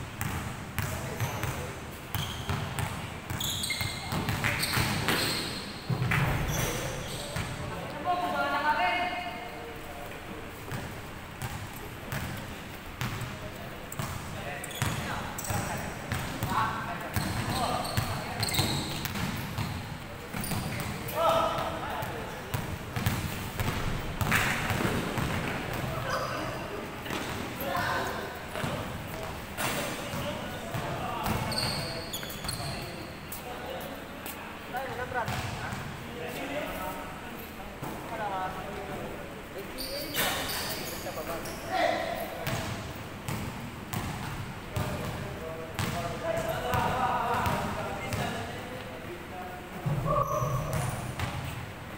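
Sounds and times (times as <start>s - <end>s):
sneakers squeaking: 0.2s - 7.9s, 10.6s - 36.0s, 39.6s - 45.2s, 45.8s - 48.6s, 49.8s - 51.7s.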